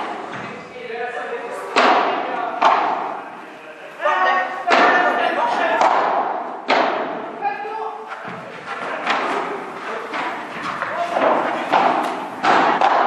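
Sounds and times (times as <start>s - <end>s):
ball hitting glass walls: 1.7s - 3.2s, 10.2s - 13.0s
padel ball hits off rackets: 11.2s - 13.0s.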